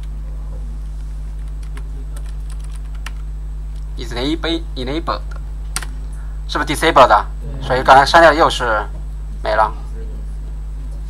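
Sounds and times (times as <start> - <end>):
low electrical hum: 0.0 - 11.0
typing on computer keyboard: 1.4 - 3.2.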